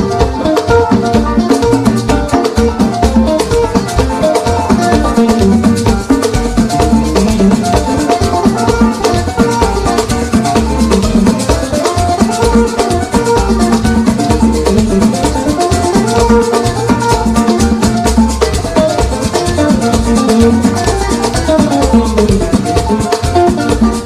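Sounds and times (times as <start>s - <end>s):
bass: 0.0s - 24.0s
drum kit: 0.0s - 24.0s
electric guitar: 0.0s - 24.0s.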